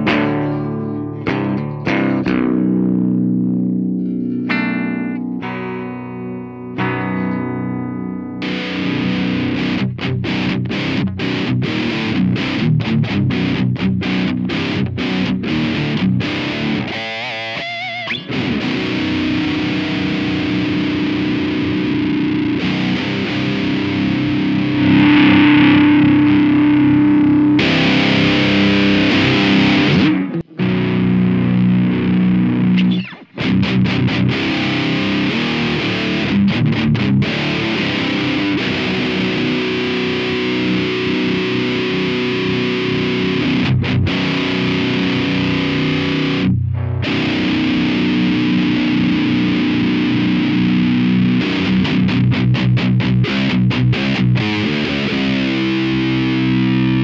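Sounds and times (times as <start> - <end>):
distorted electric guitar riffing: 0.0 - 57.0.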